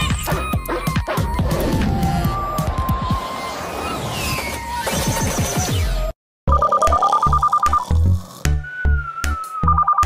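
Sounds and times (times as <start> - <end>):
telephone ringing electronic warble: 6.5 - 7.9
background music: 6.5 - 10.0.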